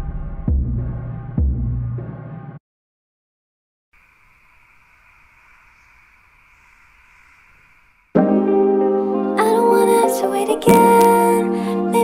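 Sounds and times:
faint steady hiss: 4.0s - 8.2s.

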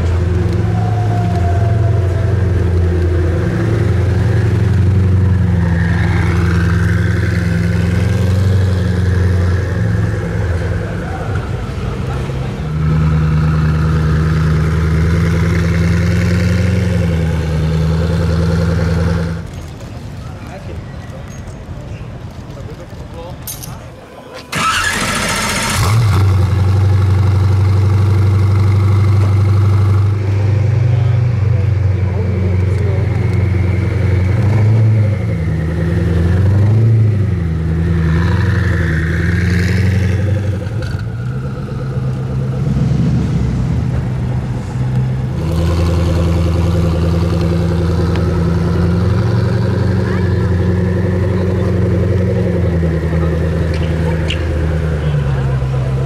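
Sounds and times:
car engine starting and revving: 0.0s - 19.6s, 24.4s - 56.0s.

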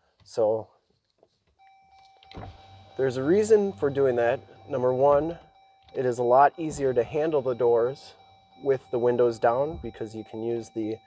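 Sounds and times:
faint steady high tone: 1.6s - 11.0s
power window motors: 2.0s - 5.7s.

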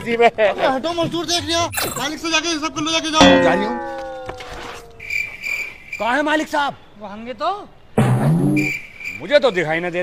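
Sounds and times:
cricket chirping: 3.2s - 7.0s, 8.5s - 10.0s.

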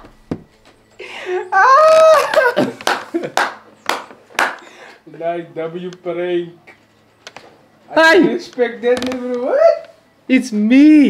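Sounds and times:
man laughing: 1.1s - 3.6s
man clapping hands: 2.2s - 4.7s.

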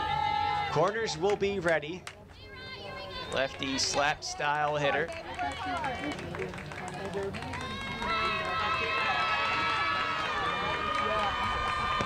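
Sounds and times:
people clapping: 3.3s - 12.0s.

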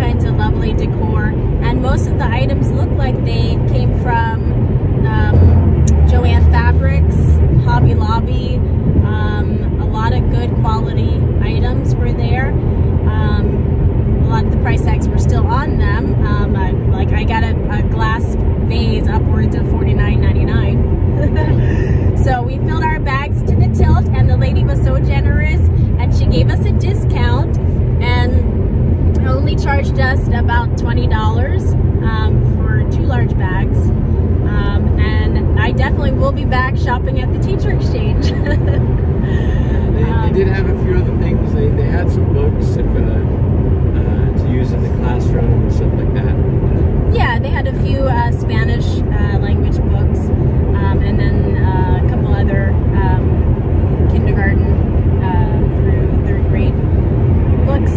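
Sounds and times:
people talking: 0.0s - 28.5s, 29.2s - 43.4s, 44.0s - 46.4s, 47.1s - 53.4s, 54.0s - 56.8s, 57.6s - 57.9s
car engine drone: 0.0s - 57.9s
road noise: 0.0s - 57.9s.

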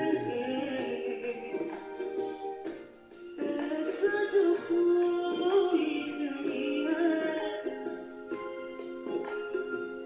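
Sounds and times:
instrumental backing: 0.0s - 10.0s.

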